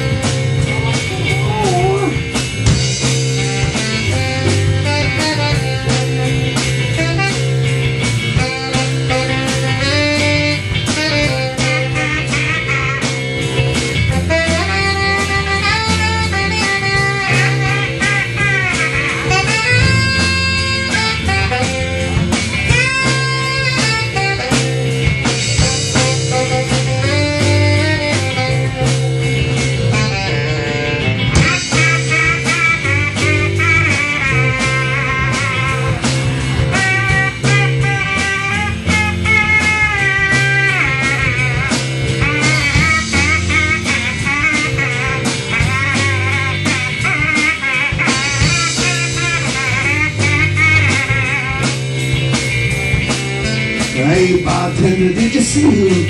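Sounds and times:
bass and drums: 0.0s - 56.0s
lead guitar solo: 0.0s - 56.0s.

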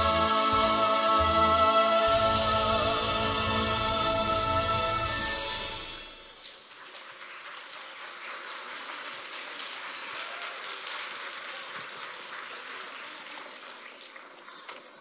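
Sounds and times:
audience applauding: 6.4s - 15.0s.

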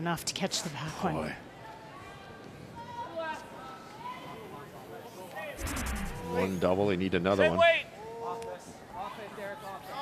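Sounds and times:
ice rink background noise: 0.0s - 10.0s.

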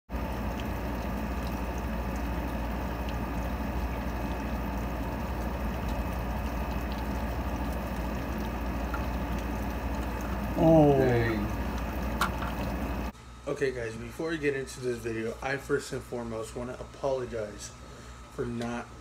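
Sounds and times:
faint drips: 0.1s - 13.1s
steady rain hiss: 0.1s - 13.1s.

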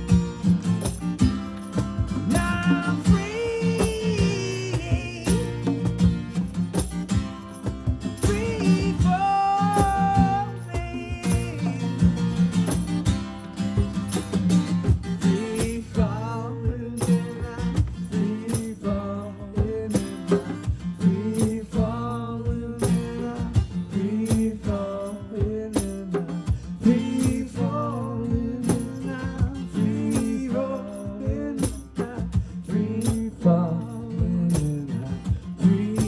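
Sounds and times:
acoustic guitar strumming: 0.0s - 36.0s
hand drums beat: 0.0s - 36.0s.

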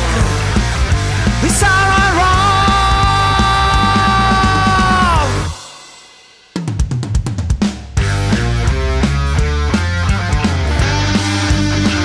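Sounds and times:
rock band playing: 0.0s - 6.2s, 6.8s - 12.0s
drum fill: 0.0s - 9.4s.

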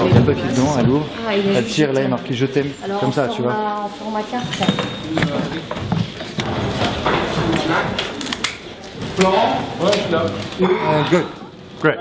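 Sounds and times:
low background voices: 0.0s - 12.0s.

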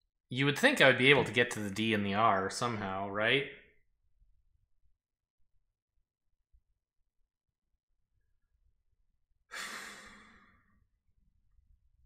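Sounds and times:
man sighing: 9.5s - 10.5s.

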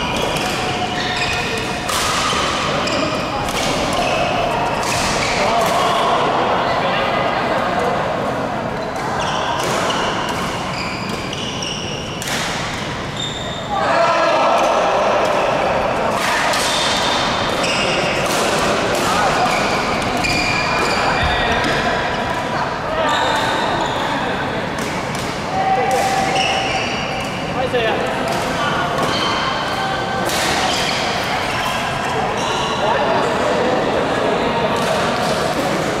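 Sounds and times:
shoes squeaking on court: 0.0s - 1.8s, 2.4s - 3.3s, 8.8s - 12.2s, 13.1s - 13.7s, 19.5s - 22.3s
background chatter: 0.0s - 36.0s.

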